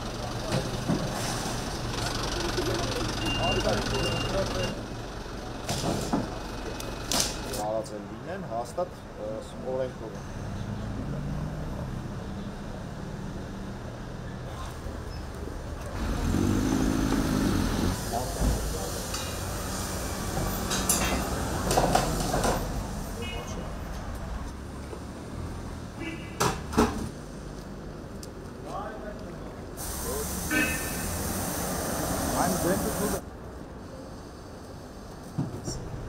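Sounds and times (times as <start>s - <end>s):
traffic rumble: 0.0s - 36.0s
people talking: 1.9s - 4.8s, 32.3s - 33.2s.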